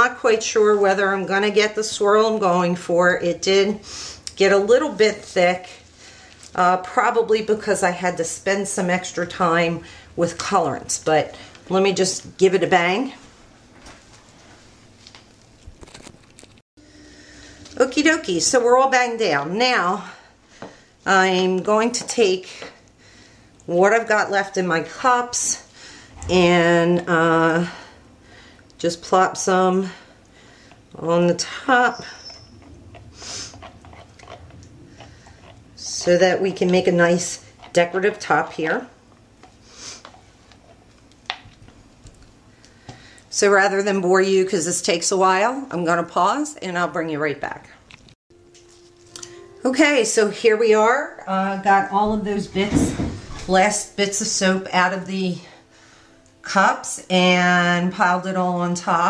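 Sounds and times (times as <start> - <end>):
spatula scraping plastic cup: 31.9 - 38.5.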